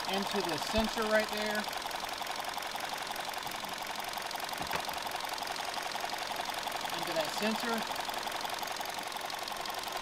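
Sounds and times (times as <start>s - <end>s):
car engine idling with ticking: 0.0s - 10.0s.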